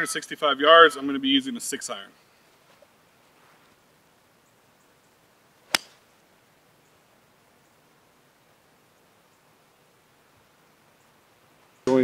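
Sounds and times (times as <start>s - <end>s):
golf club striking ball: 5.6s - 6.0s.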